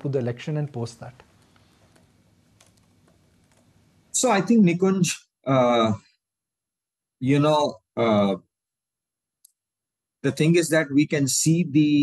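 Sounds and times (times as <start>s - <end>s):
man speaking: 0.0s - 1.2s, 4.2s - 6.0s, 7.2s - 8.4s, 10.2s - 12.0s.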